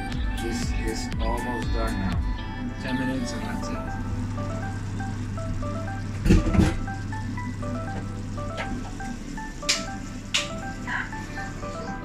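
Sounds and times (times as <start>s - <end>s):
steady low hum: 0.0s - 12.0s
upbeat background music: 0.0s - 12.0s.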